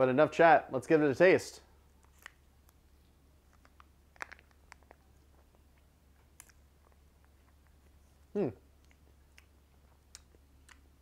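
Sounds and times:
low steady hum: 0.0s - 11.0s
crinkly pouch clicks: 2.0s - 2.8s, 3.5s - 5.0s
faint lip smacks: 3.5s - 10.8s.

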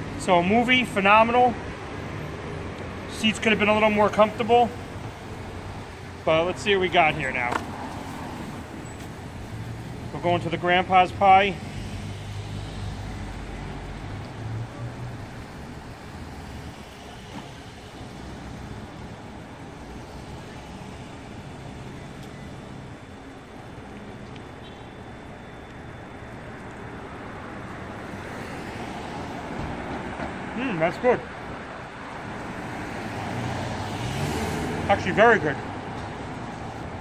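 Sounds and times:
car approaching: 0.0s - 37.0s
steady traffic hum: 0.0s - 37.0s
car passing with low rumble: 3.1s - 37.0s.

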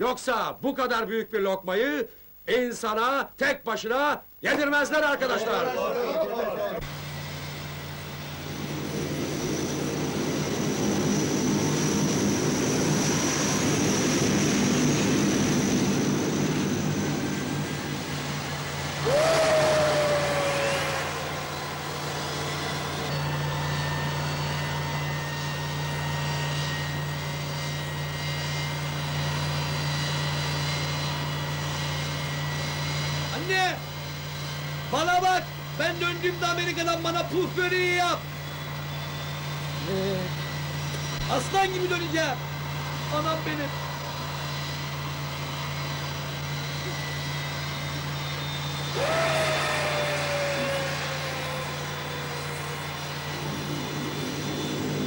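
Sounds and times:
jet engines droning: 4.5s - 55.0s
high turbine whine: 4.8s - 55.0s.

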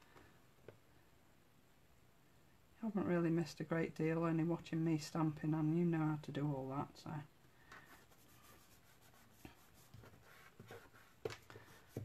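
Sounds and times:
paper card rustling and tapping: 9.9s - 12.0s.

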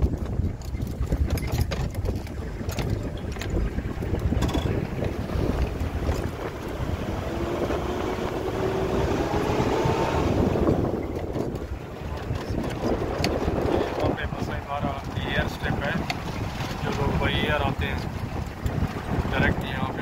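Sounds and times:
vehicle rumble on dirt track: 0.0s - 20.0s
wind buffeting microphone: 0.0s - 20.0s
rising whine: 5.2s - 11.0s.

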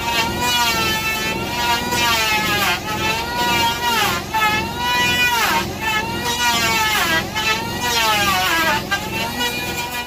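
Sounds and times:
chainsaw cutting through log: 0.0s - 10.0s.

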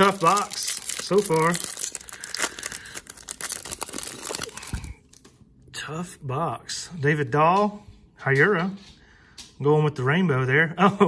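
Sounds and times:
foil wrapper tearing and crinkling: 0.0s - 5.2s.

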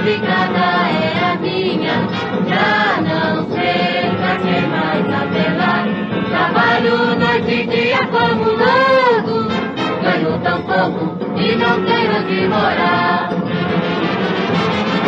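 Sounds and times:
old record of band music: 0.0s - 15.0s.

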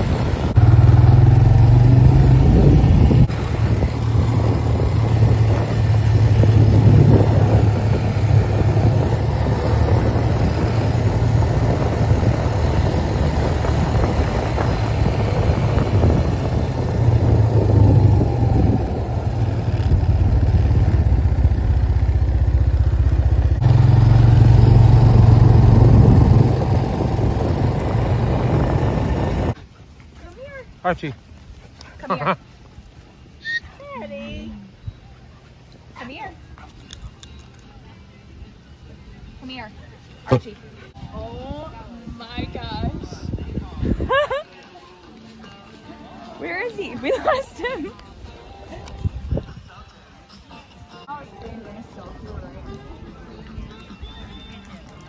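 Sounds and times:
atv engine rumbling: 0.0s - 29.6s.

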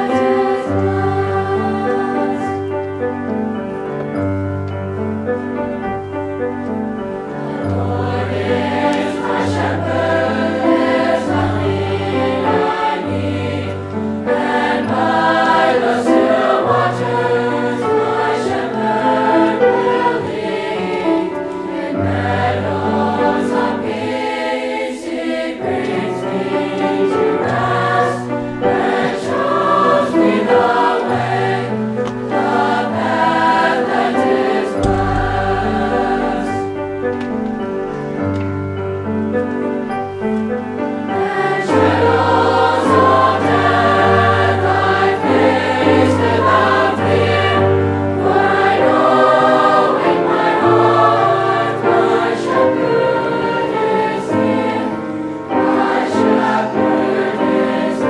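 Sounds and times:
children's choir singing: 0.0s - 58.0s.

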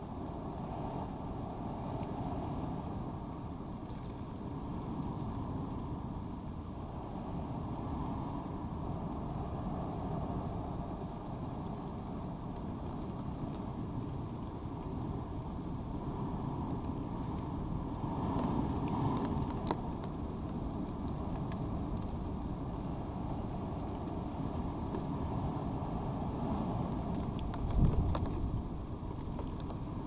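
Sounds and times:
low outdoor background rumble: 0.0s - 30.0s.

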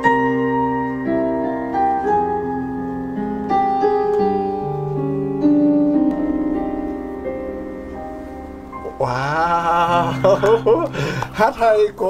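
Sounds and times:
gentle electric keyboard music: 0.0s - 12.0s.

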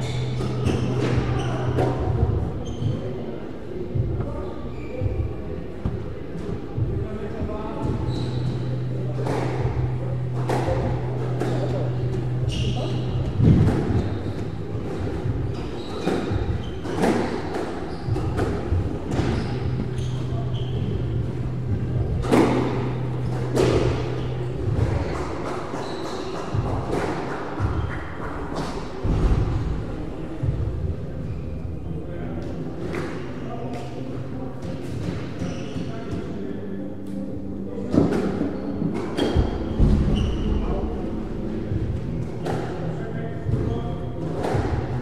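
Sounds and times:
squash ball hitting rackets and walls: 9.1s - 20.8s, 37.9s - 45.0s.

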